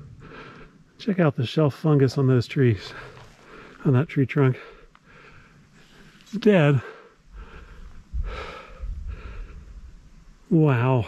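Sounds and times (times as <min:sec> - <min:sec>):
person breathing hard: 0:00.0 - 0:00.9, 0:02.9 - 0:03.8, 0:04.6 - 0:10.0
low microphone rumble: 0:07.3 - 0:10.5.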